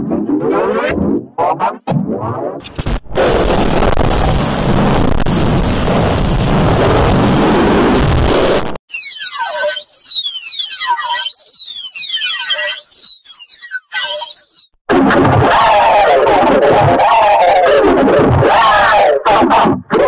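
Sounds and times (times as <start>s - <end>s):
loud distorted noise: 2.8s - 9.8s.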